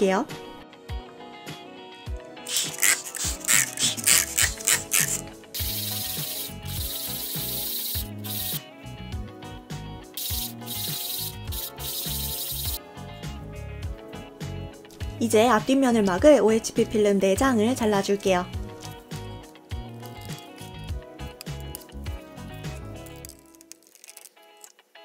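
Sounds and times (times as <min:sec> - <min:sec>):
wet-sanding rubbing strokes: 0:02.5 - 0:08.6, 0:10.2 - 0:12.8.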